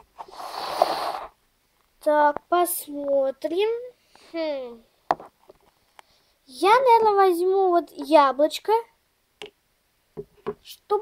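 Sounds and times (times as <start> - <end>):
child breathy exhale: 0.2 - 1.3.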